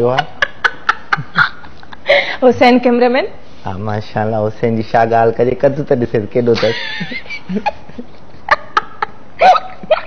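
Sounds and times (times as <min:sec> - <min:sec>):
person laughing: 0:00.2 - 0:02.0.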